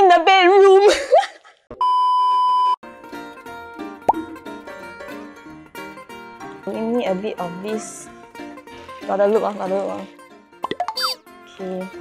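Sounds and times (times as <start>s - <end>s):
plucked-string background music: 2.8s - 12.0s
high electronic beep: 10.8s - 11.2s.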